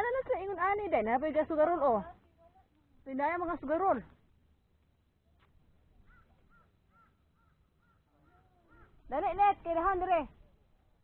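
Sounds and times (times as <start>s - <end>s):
bird calling: 6.0s - 9.1s.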